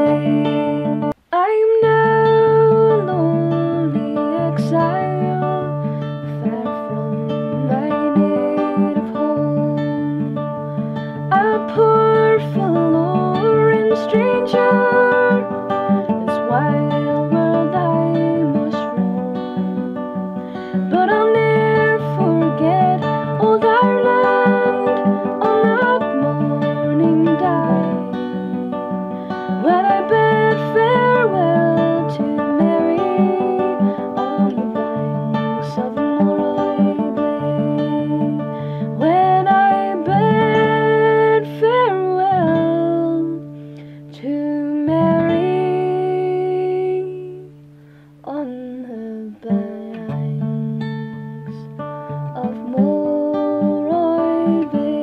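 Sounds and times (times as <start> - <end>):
acoustic guitar: 0.0 - 55.0
woman singing slow song: 0.0 - 55.0.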